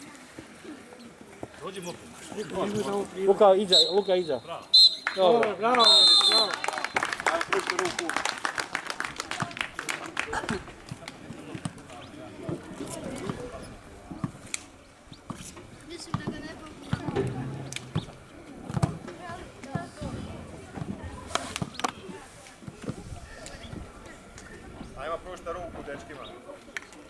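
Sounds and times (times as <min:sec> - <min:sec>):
people clapping: 0:05.0 - 0:12.0
distant children talking and calling: 0:12.0 - 0:27.0.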